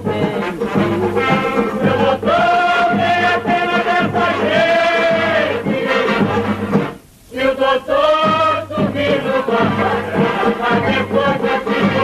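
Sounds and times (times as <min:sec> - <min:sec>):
accompanying music: 0:00.0 - 0:12.0
voices singing long notes: 0:00.0 - 0:12.0.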